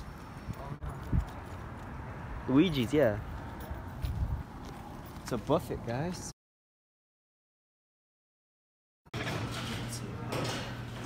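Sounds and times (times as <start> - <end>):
outdoor background noise: 0.0 - 6.4, 9.1 - 11.0.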